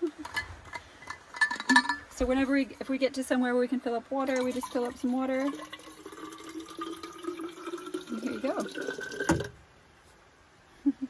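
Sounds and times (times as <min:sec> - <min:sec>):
water pouring into bottle: 0:04.3 - 0:09.6.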